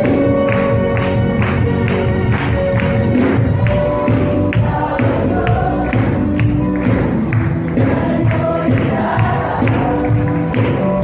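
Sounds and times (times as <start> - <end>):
instrumental accompaniment: 0.0 - 11.0
steady percussive beat: 0.0 - 11.0
choir singing a hymn: 4.2 - 6.5, 7.7 - 10.8.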